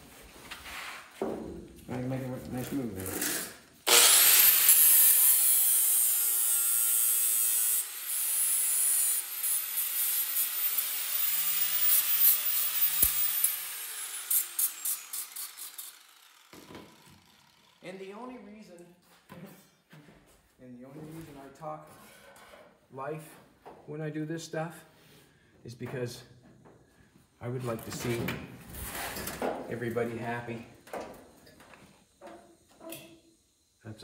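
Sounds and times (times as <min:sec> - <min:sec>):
angle grinder grinding metal: 0:02.7 - 0:18.0.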